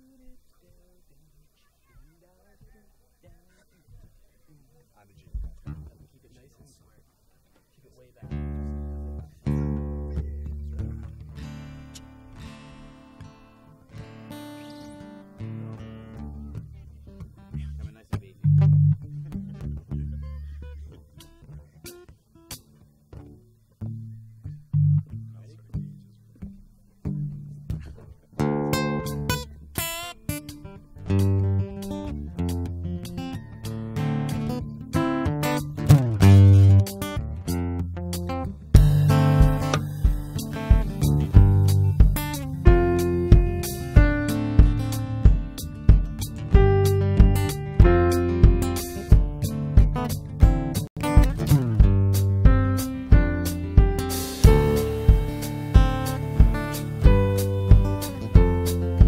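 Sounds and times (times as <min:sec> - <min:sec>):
strummed acoustic guitar: 0:08.2 - 0:59.0
deep bass notes: 0:08.3 - 0:12.6, 0:15.6 - 0:21.6, 0:31.0 - 0:59.0
keyboards: 0:23.8 - 0:59.0.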